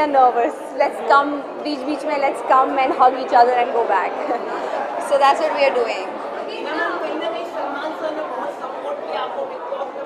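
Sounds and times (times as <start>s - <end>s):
babble of voices: 0.0s - 10.0s.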